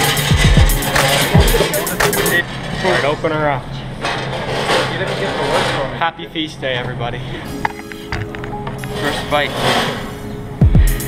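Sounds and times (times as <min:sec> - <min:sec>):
people talking: 0:01.0 - 0:03.9, 0:04.7 - 0:07.6, 0:08.9 - 0:10.0.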